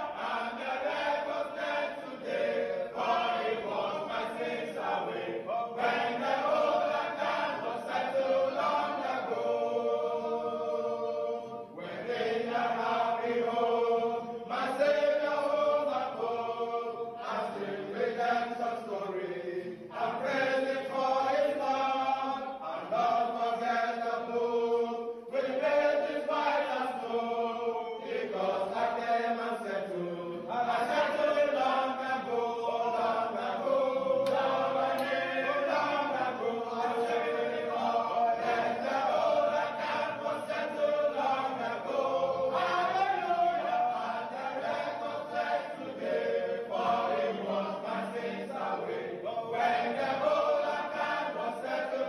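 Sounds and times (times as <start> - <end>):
young men singing a hymn: 0.0 - 52.0.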